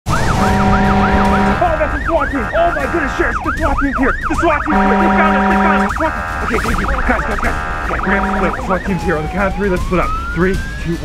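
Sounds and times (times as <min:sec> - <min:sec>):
siren fast yelp: 0:00.1 - 0:11.0
steady low siren tone: 0:00.1 - 0:11.0.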